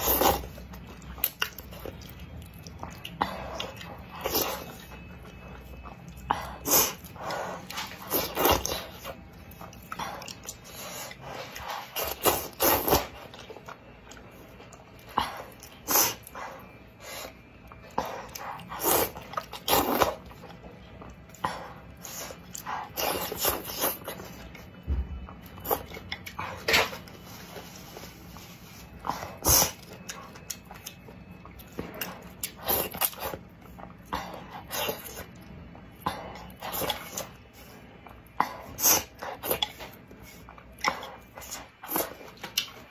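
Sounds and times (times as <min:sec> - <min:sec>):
chewing: 0:00.0 - 0:42.9.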